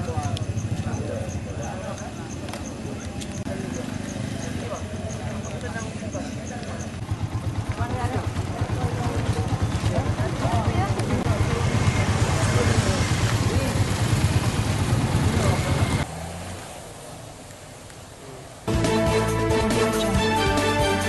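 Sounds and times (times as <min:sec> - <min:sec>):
crowd chatter: 0:00.0 - 0:16.1
engine running: 0:00.0 - 0:17.1.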